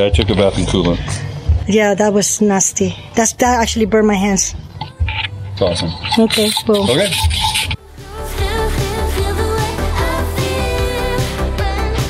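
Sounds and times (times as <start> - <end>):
outdoor background noise: 0.0 - 7.9
pop song with singer: 3.6 - 12.0.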